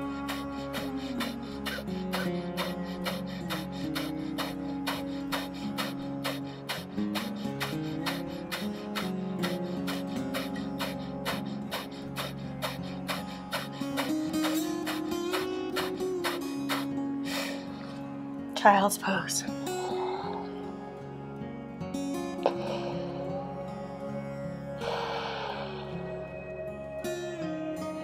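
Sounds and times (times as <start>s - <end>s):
rapid nasal exhalations: 0.0s - 18.0s, 19.5s - 20.8s, 22.1s - 23.9s, 24.8s - 26.2s
music with sustained tones: 0.0s - 28.0s.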